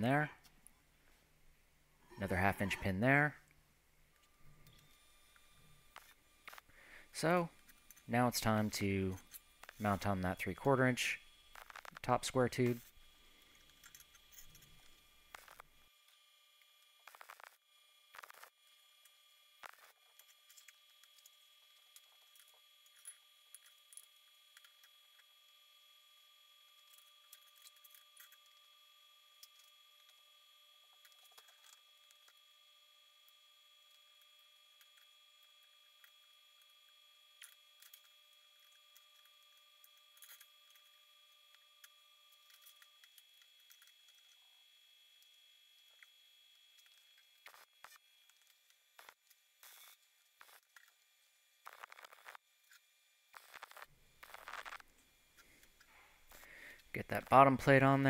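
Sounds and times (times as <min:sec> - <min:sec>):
faint steady whine: 0:00.0 - 0:58.0
wire-feed welder tack welding: 0:51.6 - 0:52.4, 0:53.3 - 0:54.9.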